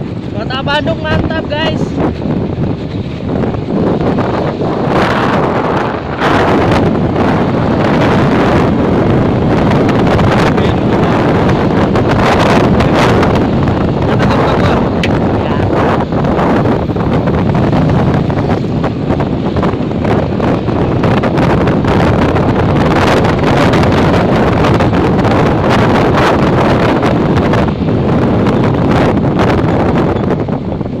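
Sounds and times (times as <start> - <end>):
motorcycle running: 0.0 - 31.0
wind rushing over microphone: 0.0 - 31.0.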